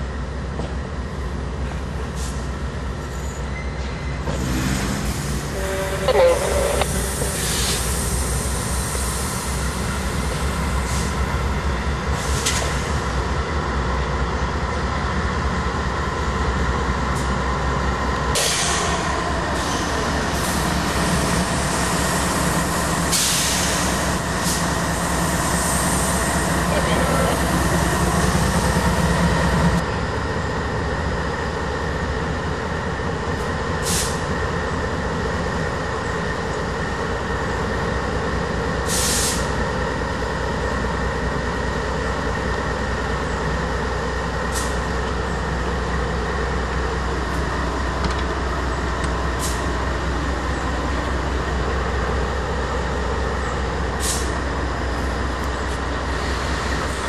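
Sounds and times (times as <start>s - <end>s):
diesel locomotives running: 0.0s - 57.0s.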